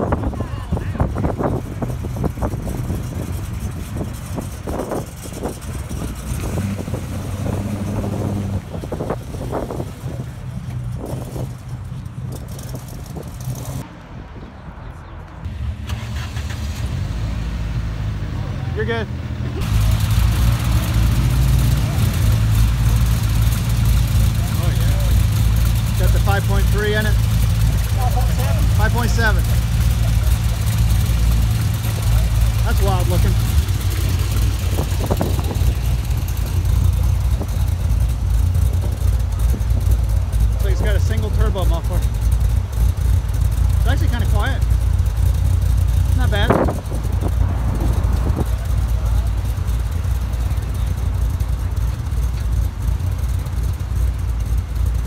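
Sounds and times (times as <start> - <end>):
sports car engine idling: 0.0 - 13.8, 19.4 - 55.0
people talking: 0.1 - 1.4, 18.3 - 19.1, 24.3 - 25.3, 25.9 - 31.1, 31.8 - 33.5, 40.5 - 42.1, 43.8 - 44.7, 46.1 - 46.8.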